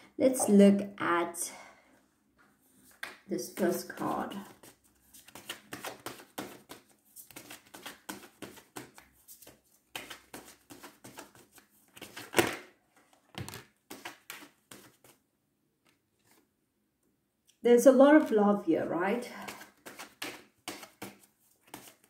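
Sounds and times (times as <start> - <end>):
cards clicking and rustling: 4.6 - 12.7, 19.5 - 22.0.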